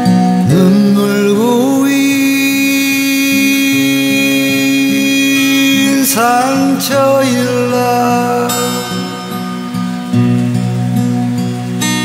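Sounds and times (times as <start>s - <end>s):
acoustic guitar: 0.0s - 12.0s
man singing a long note: 0.4s - 9.4s.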